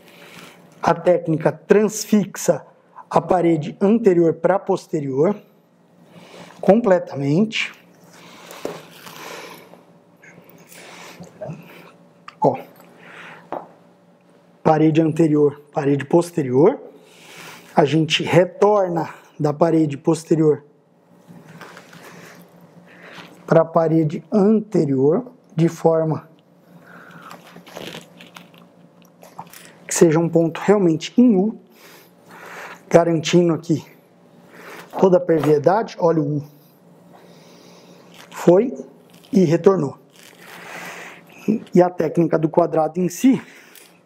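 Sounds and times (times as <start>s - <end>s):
cloth rustling: 27.1s - 29.8s, 40.1s - 40.7s
thread rustling through cloth: 27.3s - 28.7s.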